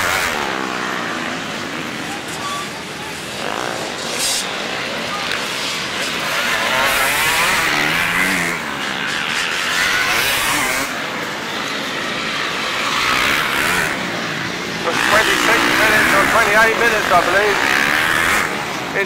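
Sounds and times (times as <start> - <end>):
dirt bikes revving past: 0.0 - 19.0.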